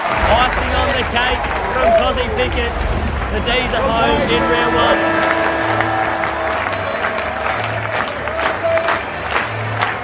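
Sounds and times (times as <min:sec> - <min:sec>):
music over stadium loudspeakers: 0:00.0 - 0:10.0
stadium crowd cheering and clapping: 0:00.0 - 0:10.0
low pulsing beat: 0:00.2 - 0:07.8.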